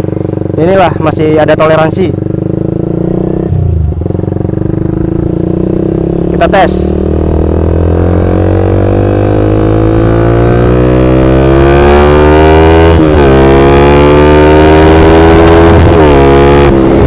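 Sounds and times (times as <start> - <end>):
motorcycle engine accelerating: 0.0 - 17.0.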